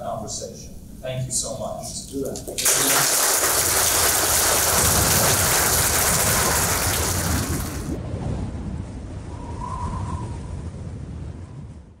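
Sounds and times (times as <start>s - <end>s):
audience applauding: 2.4s - 8.0s.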